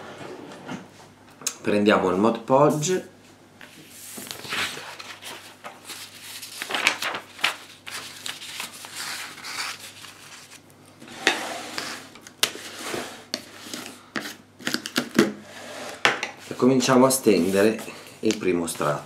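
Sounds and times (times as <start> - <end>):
paper rustling: 3.6 - 10.6.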